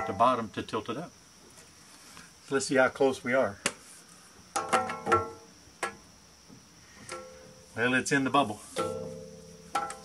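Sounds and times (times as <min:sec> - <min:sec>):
metallic knocks on steel bracket: 0:04.5 - 0:06.0, 0:08.8 - 0:10.0.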